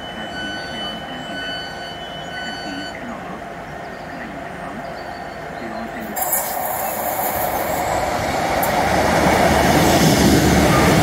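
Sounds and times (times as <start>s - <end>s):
door warning alarm: 0.0s - 3.0s.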